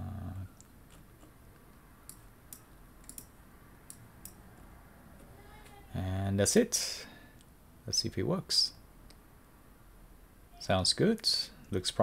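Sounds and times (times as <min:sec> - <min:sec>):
computer mouse clicking: 0:00.6 - 0:04.4.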